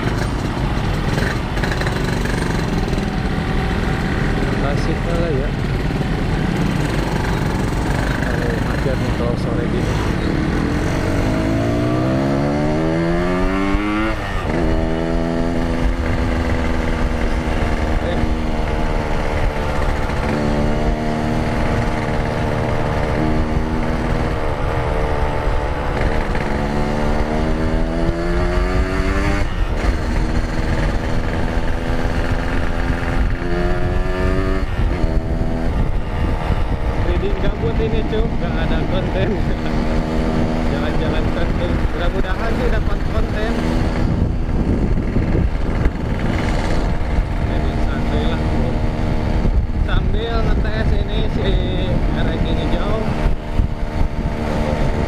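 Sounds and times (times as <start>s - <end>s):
motorcycle engine accelerating: 0.0s - 55.0s
wind and road noise: 0.0s - 55.0s.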